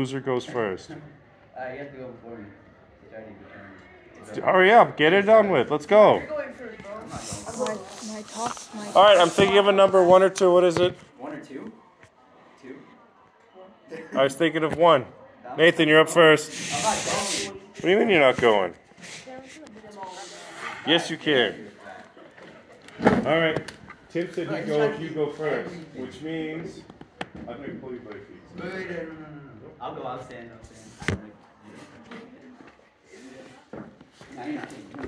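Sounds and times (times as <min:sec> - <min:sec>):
faint students talking: 0:00.0 - 0:35.0
faint background voices: 0:06.2 - 0:35.0.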